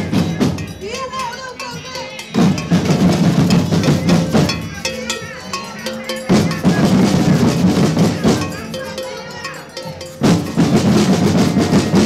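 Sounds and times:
snare and bass drums marching: 0.0 - 12.0.

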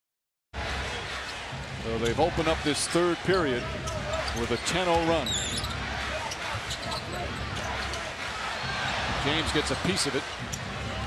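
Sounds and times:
sneaker squeak: 4.0 - 7.9.

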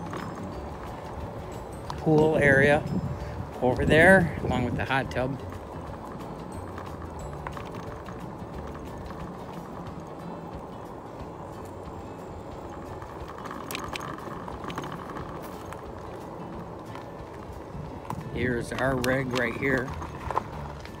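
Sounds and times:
low rumbling noise: 0.0 - 21.0.

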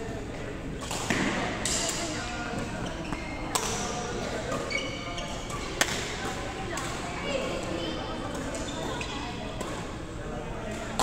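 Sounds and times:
background chatter: 0.0 - 11.0
rackets hitting shuttlecock: 0.9 - 2.1, 3.5 - 4.7, 5.5 - 7.1.

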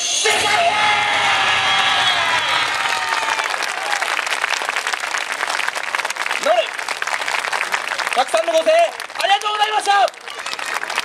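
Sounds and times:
crowd applauding: 0.9 - 11.0.

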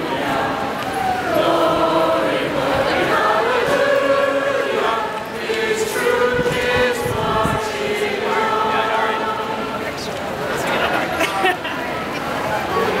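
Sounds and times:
group singing in unison: 0.0 - 10.0.

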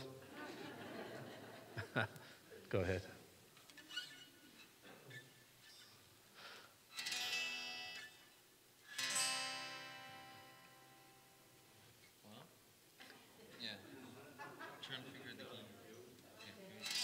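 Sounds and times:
guitar chord strummed: 9.0 - 11.8.

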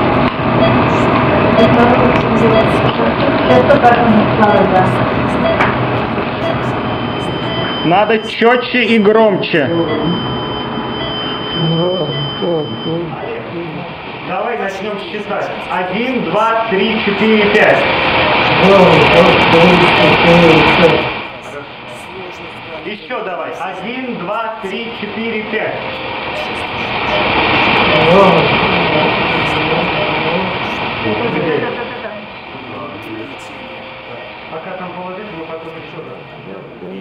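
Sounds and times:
steady hiss and hum: 0.0 - 37.0
indistinct speech: 0.6 - 10.3, 11.5 - 37.0
faint muffled voices: 24.6 - 37.0.

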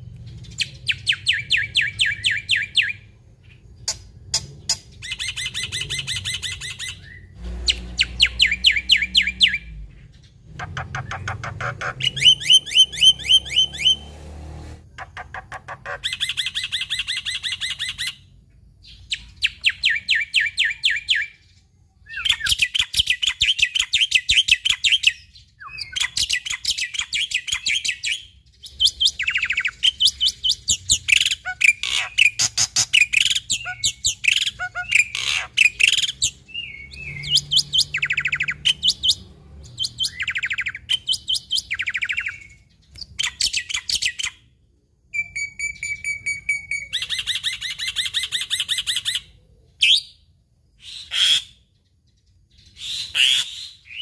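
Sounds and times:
bird singing chattering notes: 0.0 - 14.1, 14.9 - 21.5, 22.2 - 44.5.

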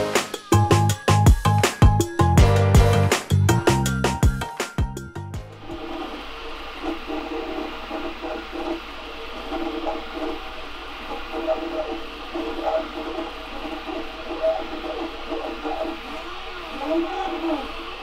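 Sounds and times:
fan hiss: 2.6 - 18.0.

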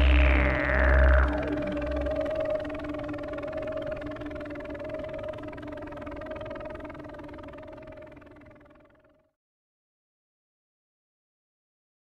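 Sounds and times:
synthesizer drone: 0.0 - 9.1.

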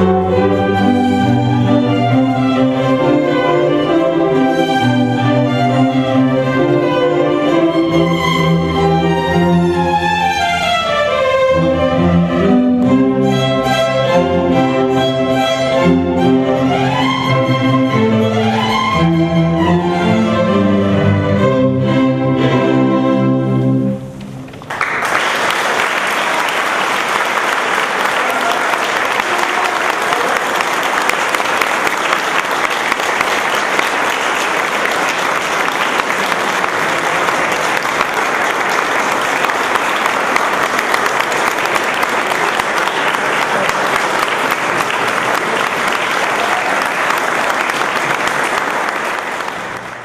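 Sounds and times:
string orchestra and cello chord: 0.0 - 24.5
audience applause: 24.5 - 50.0.

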